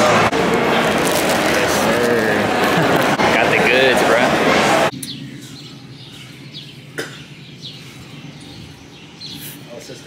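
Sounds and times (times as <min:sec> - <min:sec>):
birds chirping: 0:01.6 - 0:10.0.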